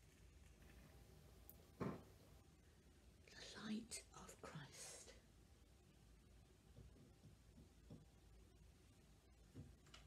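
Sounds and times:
woman whispering: 3.2s - 5.3s.

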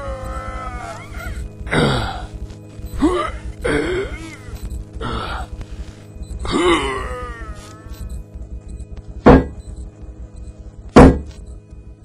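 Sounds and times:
wordless vocal cry: 0.0s - 2.0s
steady low rumble: 0.0s - 12.0s.

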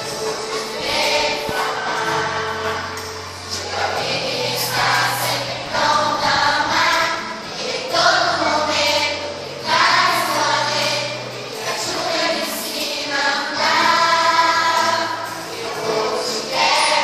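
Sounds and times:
children's choir singing: 0.0s - 17.0s.

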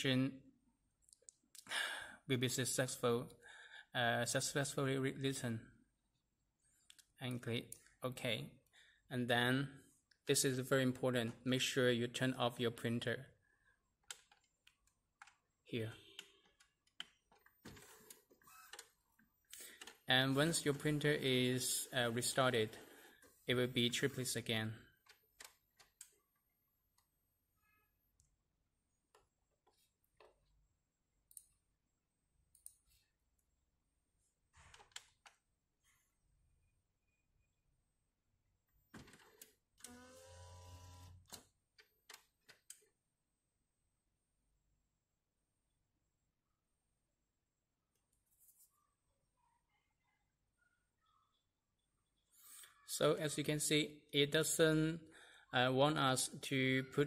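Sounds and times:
printer motor whirring: 39.8s - 41.2s.

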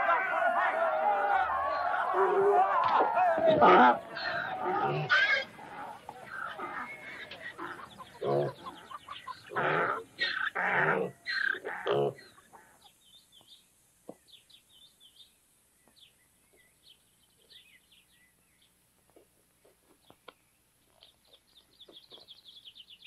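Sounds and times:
people shouting: 0.0s - 7.2s
pigs squealing: 1.5s - 12.4s
small birds chirping: 4.0s - 23.0s.

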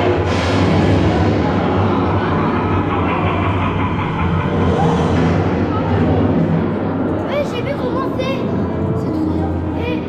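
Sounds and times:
loud low rumble: 0.0s - 10.0s.

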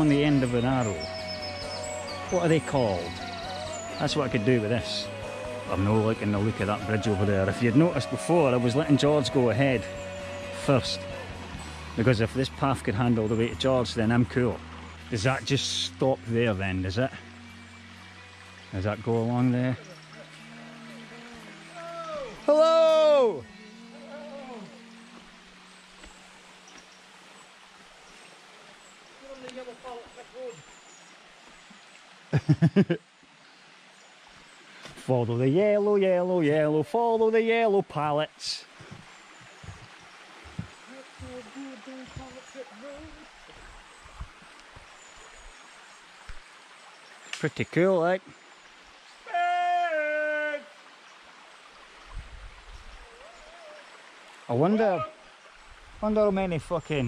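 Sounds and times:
stream rushing: 0.0s - 57.0s
long howl-like voice call: 3.2s - 11.6s, 21.7s - 25.1s, 49.2s - 50.8s, 53.0s - 54.0s
person's quiet voice: 40.9s - 43.3s.

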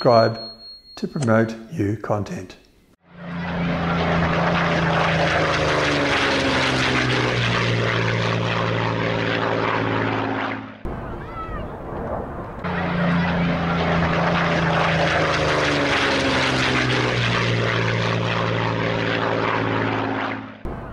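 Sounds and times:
propeller aircraft engine drone: 3.0s - 20.9s.

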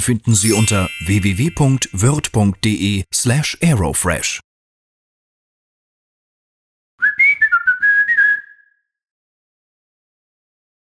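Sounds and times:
person whistling a tune: 7.0s - 8.9s.

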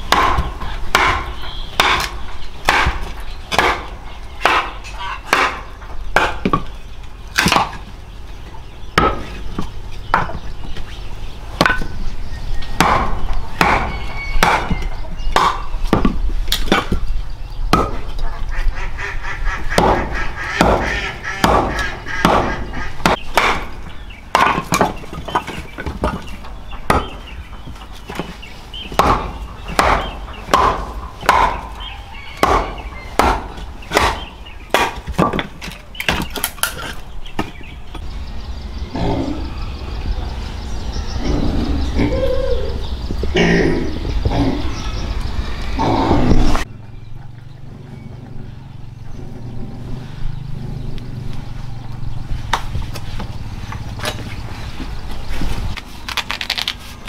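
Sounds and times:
machete chopping wood: 0.0s - 6.7s, 7.3s - 7.8s, 11.6s - 11.9s, 12.8s - 17.0s, 17.7s - 18.1s, 19.8s - 26.2s, 26.9s - 27.2s, 28.9s - 31.7s, 32.4s - 37.6s.

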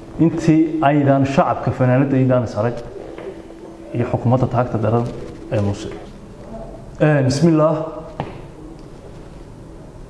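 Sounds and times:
man talking: 0.2s - 3.0s, 3.9s - 6.2s, 7.0s - 8.1s.

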